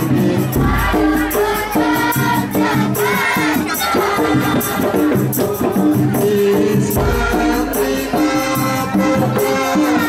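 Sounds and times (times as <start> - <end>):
frame drums with jingling beat: 0.0 - 10.0
group singing devotional songs: 0.0 - 10.0
deep bass drum boom: 6.8 - 8.1.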